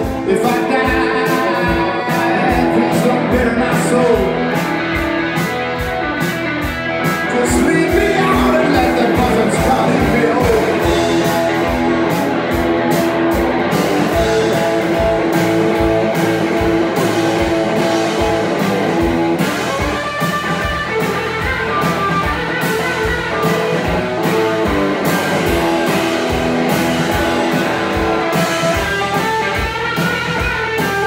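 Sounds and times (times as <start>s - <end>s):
bass guitar: 0.0s - 31.0s
electric guitar: 0.0s - 31.0s
steady drum beat: 0.0s - 31.0s.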